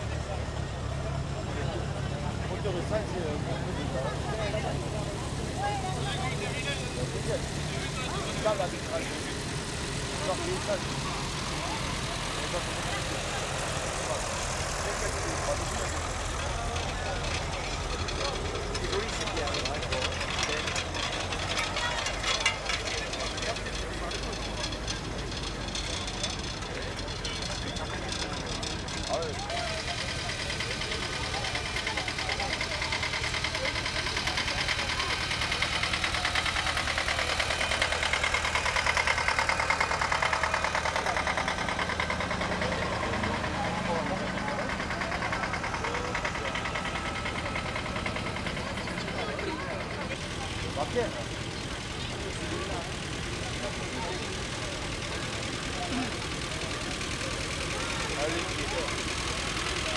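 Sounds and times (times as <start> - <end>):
tractor engines running: 0.0 - 59.9.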